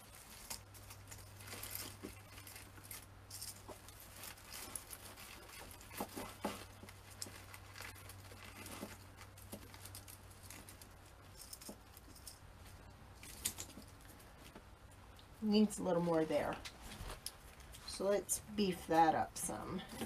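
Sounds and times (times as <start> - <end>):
low steady hum: 0.0 - 20.0
rustling artificial pine needles: 0.0 - 20.0.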